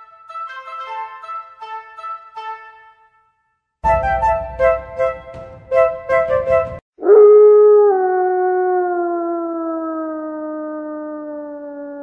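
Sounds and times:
keyboard notes: 3.8 - 6.8
wolf howl: 7.0 - 12.0.

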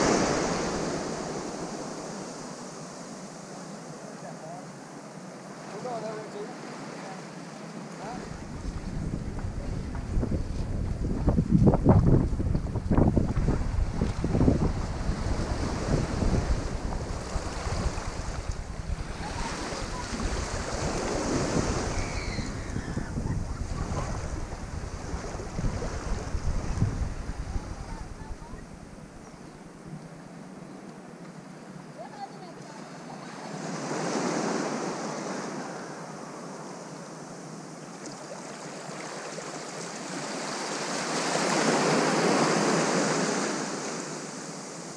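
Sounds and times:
wind buffeting microphone: 8.2 - 29.8
small waves lapping: 13.9 - 29.7, 31.7 - 44.9.

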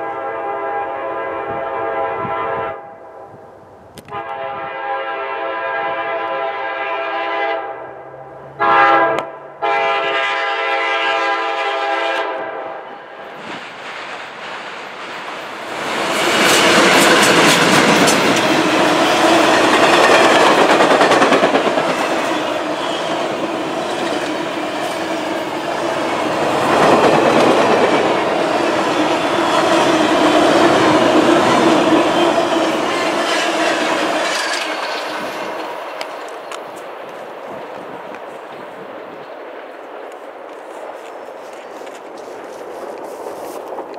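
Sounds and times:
locomotive air horn blasts: 0.0 - 3.0, 4.0 - 13.0
train wheels clicking over rail joints: 13.2 - 39.4.

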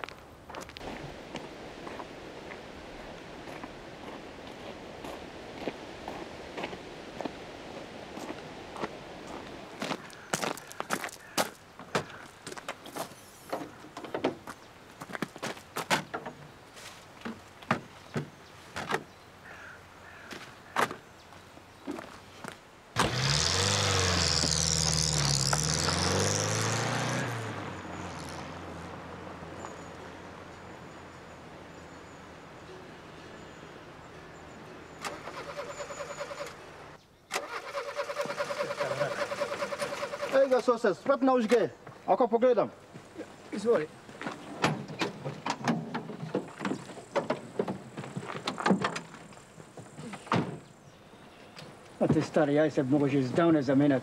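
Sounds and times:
car engine starting and revving: 23.0 - 31.8, 35.0 - 40.4.

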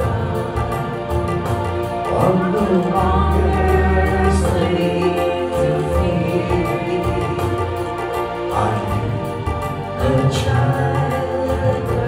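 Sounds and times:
electric keyboard chords: 0.0 - 12.0
group singing a hymn: 0.0 - 12.0.

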